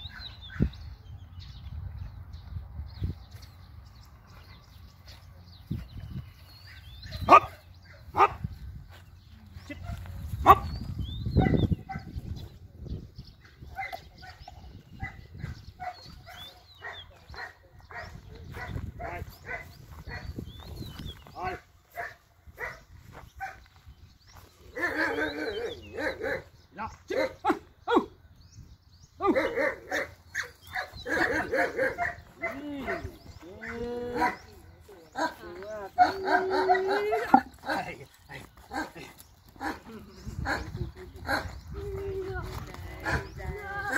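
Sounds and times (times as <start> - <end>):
dogs barking: 6.6 - 8.6, 9.6 - 12.2, 13.4 - 20.5, 21.5 - 23.7, 24.7 - 28.1, 29.2 - 41.7.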